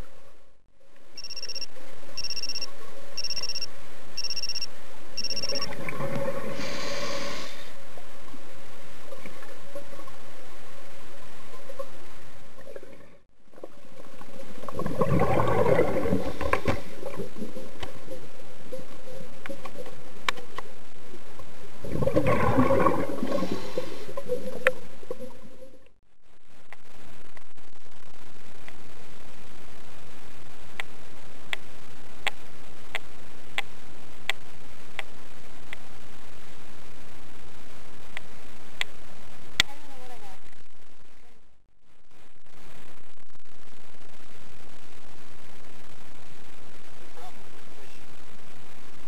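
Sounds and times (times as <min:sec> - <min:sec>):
two-tone electronic beeps: 0:01.2 - 0:05.7
regulator bubbling underwater: 0:05.2 - 0:07.3, 0:12.6 - 0:18.2, 0:21.8 - 0:25.7
breath through scuba regulator: 0:06.4 - 0:07.8, 0:23.1 - 0:24.3.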